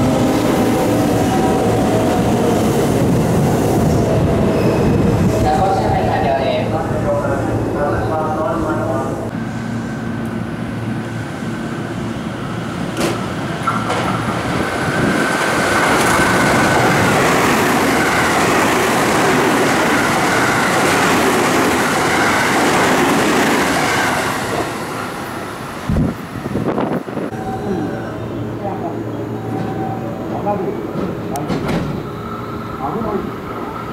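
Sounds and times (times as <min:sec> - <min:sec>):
train wheels rushing on rails: 0:08.1 - 0:27.3, 0:29.4 - 0:33.9.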